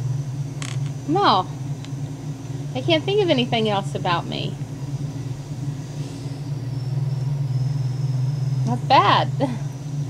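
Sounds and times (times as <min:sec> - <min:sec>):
faint high whine: 0:00.0 - 0:10.0
steady low rumble: 0:00.0 - 0:10.0.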